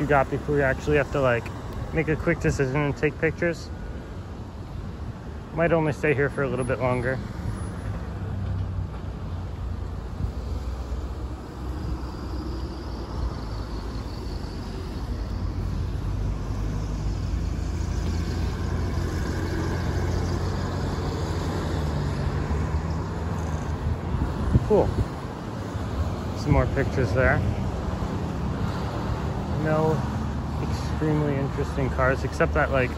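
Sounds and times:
road traffic rumble: 0.0s - 32.9s.

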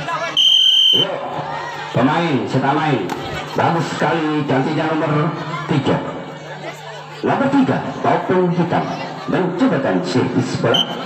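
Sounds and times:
referee's whistle blast: 0.4s - 1.1s, 10.7s - 11.0s.

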